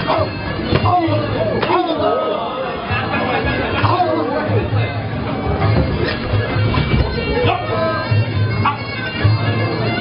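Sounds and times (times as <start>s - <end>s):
crowd chatter: 0.0s - 10.0s
reedy oboe melody: 5.0s - 10.0s.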